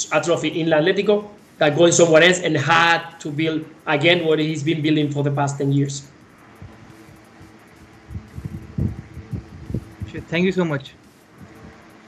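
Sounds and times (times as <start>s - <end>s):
faint steady hum: 0.0s - 12.0s
muffled low thumps: 6.3s - 11.9s.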